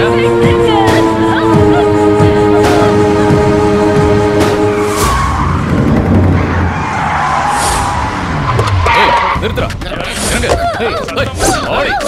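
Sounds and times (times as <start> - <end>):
car engine braking to a stop: 4.8 - 9.6.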